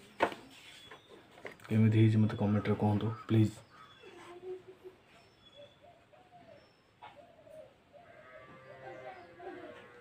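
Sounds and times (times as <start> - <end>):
faint wavering animal calls: 2.2 - 10.0.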